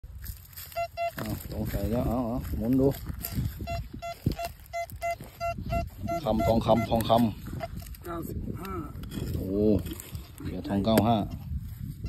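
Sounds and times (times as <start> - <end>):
metal detector beeping: 0.2 - 8.0.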